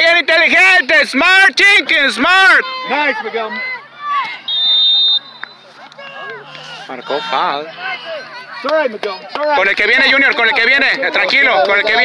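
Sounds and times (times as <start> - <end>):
referee's whistle blast: 4.4 - 5.7.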